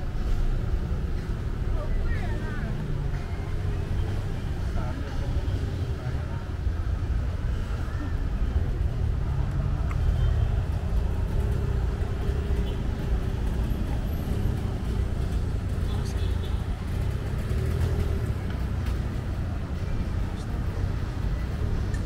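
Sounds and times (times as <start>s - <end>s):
cars passing rumble: 0.0s - 22.0s.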